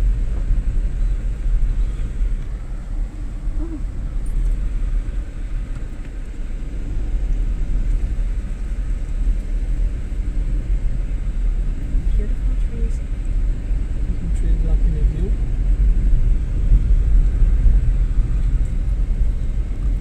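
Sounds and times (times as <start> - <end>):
car driving slowly: 0.0 - 20.0.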